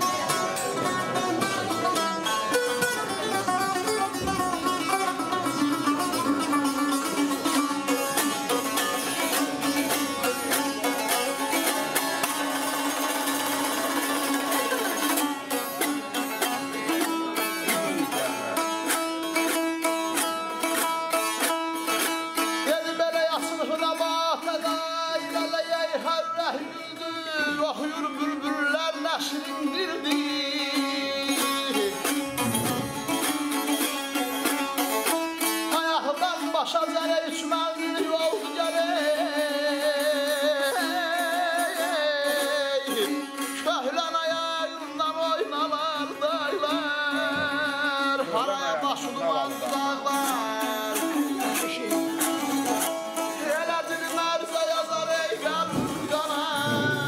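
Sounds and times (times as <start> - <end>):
man singing: 22.6 - 33.6, 35.6 - 57.0
lute strummed fast over drone: 32.3 - 33.4.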